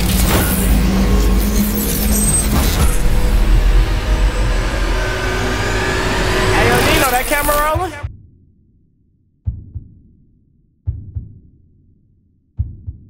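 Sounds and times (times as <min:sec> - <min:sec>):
loud low rumble: 0:00.0 - 0:08.1
sharp hits: 0:00.0 - 0:08.1.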